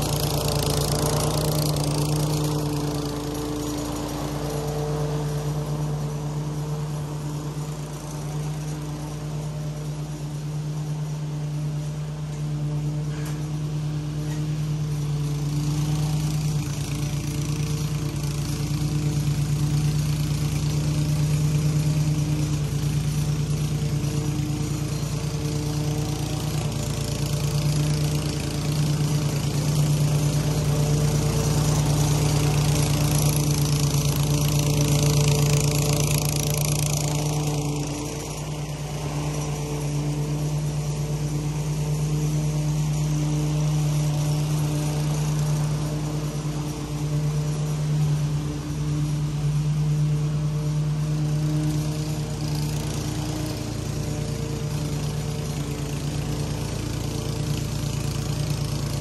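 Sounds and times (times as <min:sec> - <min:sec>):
lawn mower engine running: 0:00.0 - 0:59.0.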